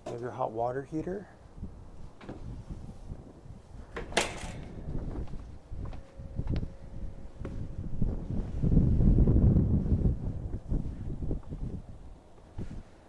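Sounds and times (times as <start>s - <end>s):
wind buffeting microphone: 0.8s - 13.0s.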